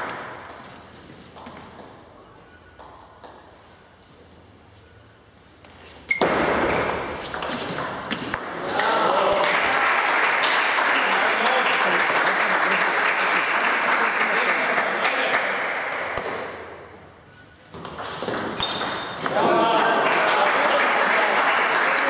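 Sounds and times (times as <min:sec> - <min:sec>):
table tennis ball ping: 0:01.4 - 0:03.5, 0:06.1 - 0:08.6, 0:17.8 - 0:19.4
crowd cheering: 0:08.6 - 0:15.6, 0:19.2 - 0:22.0.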